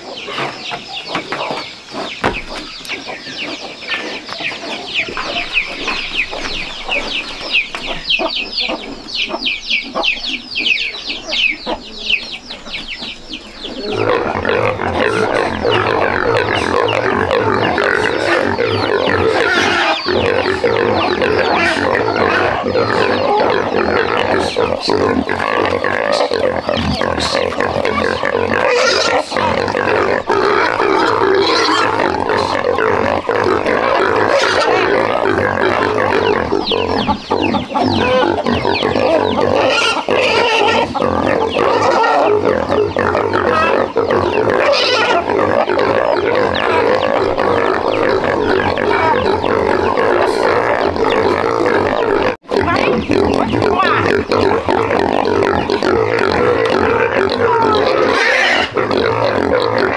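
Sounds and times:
pigs squealing: 0:13.4 - 0:59.9.

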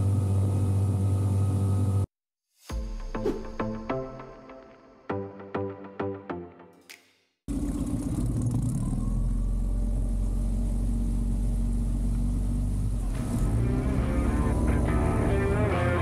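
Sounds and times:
outboard motor running: 0:00.0 - 0:02.0, 0:07.5 - 0:16.0
rock music with guitar: 0:13.4 - 0:16.0.

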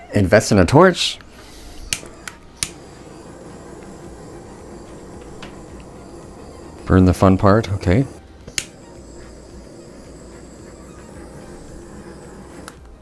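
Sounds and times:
igniter clicks: 0:01.2 - 0:13.0
blowtorch flame hissing: 0:01.3 - 0:13.0.

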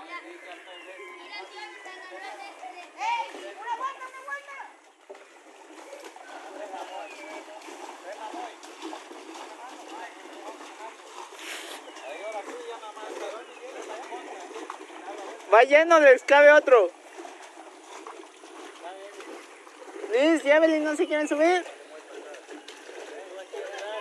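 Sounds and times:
children and adults chattering: 0:00.0 - 0:08.6
water splashing around metal boat: 0:02.2 - 0:24.0.

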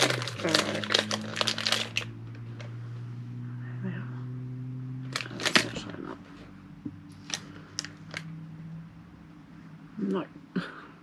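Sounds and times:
plastic bag crinkling: 0:00.0 - 0:02.2, 0:05.1 - 0:06.0, 0:07.2 - 0:08.3.

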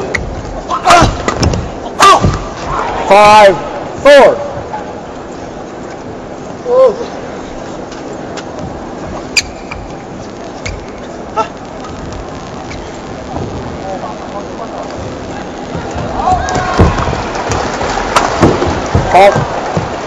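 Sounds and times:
murmur of arena crowd: 0:00.0 - 0:20.0
shoe squeaks: 0:09.2 - 0:11.2.

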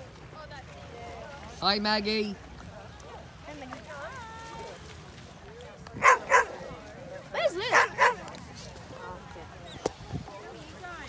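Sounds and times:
dog barking: 0:06.0 - 0:06.5, 0:07.7 - 0:08.2.

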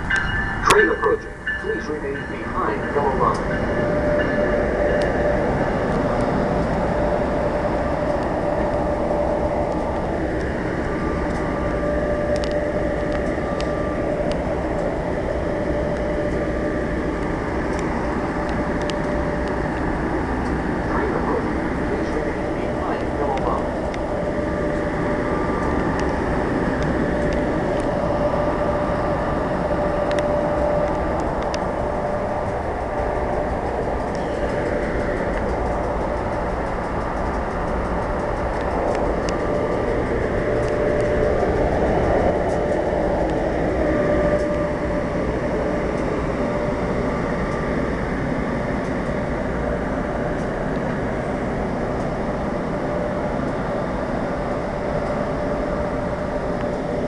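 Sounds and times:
electric locomotive humming: 0:00.0 - 0:57.0.

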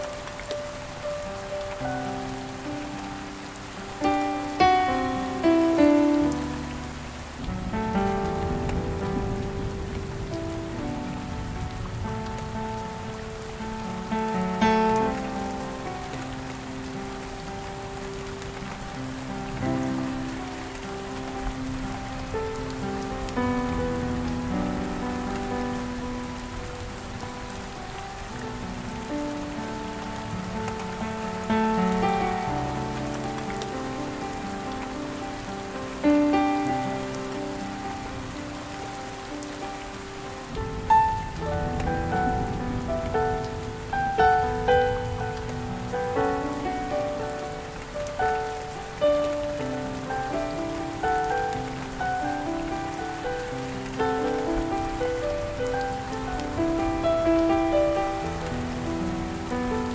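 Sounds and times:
rain hissing: 0:00.0 - 0:59.9
soft solo piano melody: 0:00.0 - 0:59.9.

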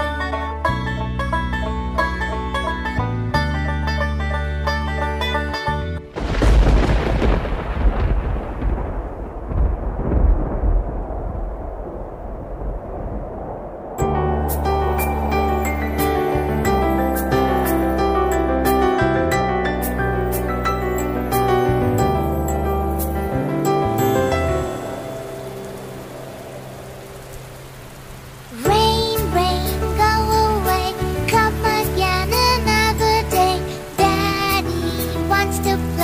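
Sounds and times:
soft music intro: 0:00.0 - 0:06.2, 0:14.0 - 0:36.0
steady hiss of falling rain: 0:03.6 - 0:19.0, 0:19.7 - 0:36.0
thunder rumbling: 0:06.1 - 0:33.3.

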